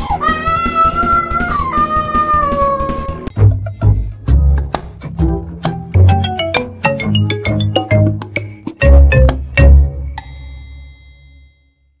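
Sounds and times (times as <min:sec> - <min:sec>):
bright metallic ding: 0:03.3 - 0:05.1, 0:10.2 - 0:11.9.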